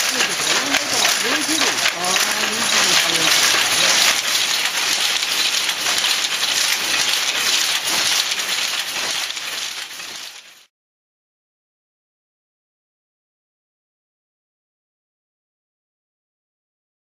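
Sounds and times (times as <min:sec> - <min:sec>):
power looms clattering: 0:00.0 - 0:10.7.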